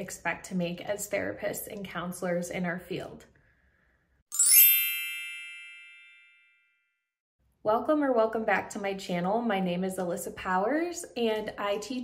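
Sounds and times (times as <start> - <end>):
bright chime ringing: 4.3 - 6.9.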